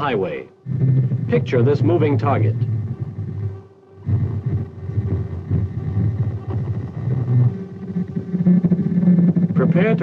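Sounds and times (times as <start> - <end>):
low rough radar doppler tone: 0.0 - 10.0.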